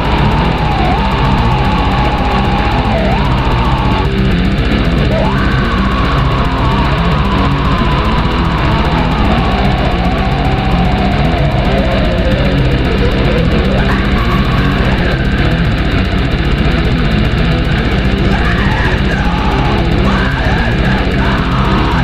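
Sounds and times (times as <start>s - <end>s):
black metal music: 0.0s - 22.0s.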